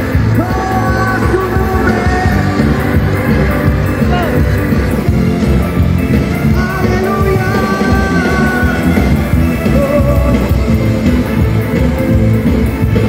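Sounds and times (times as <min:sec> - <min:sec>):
live band playing amplified music: 0:00.0 - 0:13.0.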